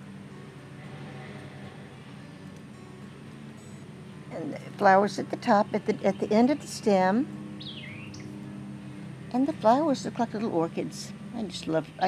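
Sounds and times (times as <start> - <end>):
faint background noise: 0.0 - 12.0
steady low hum: 0.0 - 12.0.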